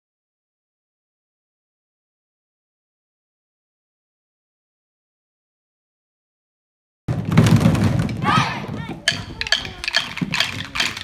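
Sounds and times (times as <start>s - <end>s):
voices: 8.2s - 11.0s
drumsticks knocking: 9.0s - 11.0s.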